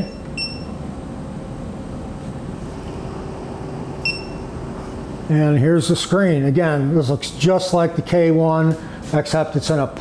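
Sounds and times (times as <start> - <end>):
touchscreen short high beep: 4.0 - 4.4.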